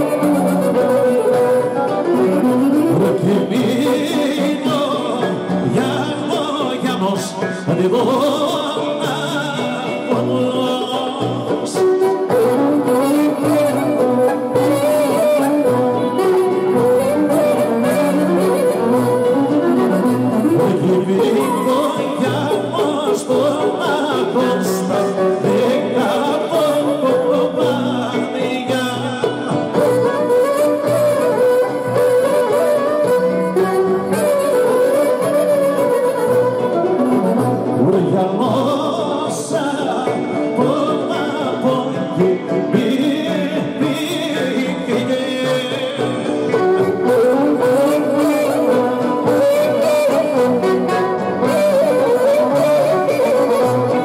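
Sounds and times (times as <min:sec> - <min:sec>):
folk dance music clarinet and violin: 0:00.0 - 0:54.0
person singing: 0:00.0 - 0:54.0
strummed plucked strings: 0:00.0 - 0:54.0.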